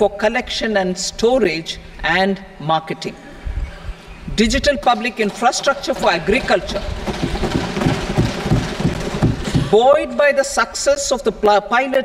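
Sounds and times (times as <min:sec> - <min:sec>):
desks being thumped: 0:05.2 - 0:09.8.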